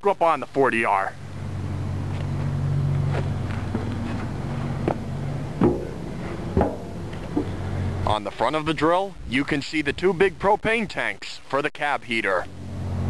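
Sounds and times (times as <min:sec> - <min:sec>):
low machine hum: 0:00.9 - 0:08.8, 0:12.3 - 0:13.0
footfalls on steel: 0:03.7 - 0:07.5.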